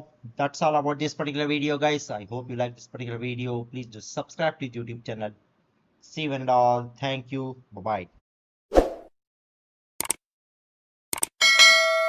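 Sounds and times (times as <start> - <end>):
double mouse click: 10.0 - 10.2
bright bell ding: 11.4 - 12.0.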